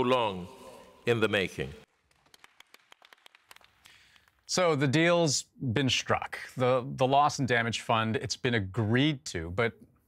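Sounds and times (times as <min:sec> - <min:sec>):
audience clapping: 0:01.8 - 0:04.5.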